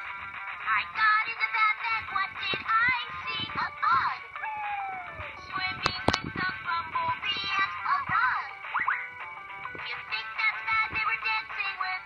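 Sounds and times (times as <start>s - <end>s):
toy pen song with singing: 0.5s - 9.0s, 9.6s - 12.0s
falling tone: 4.4s - 5.4s.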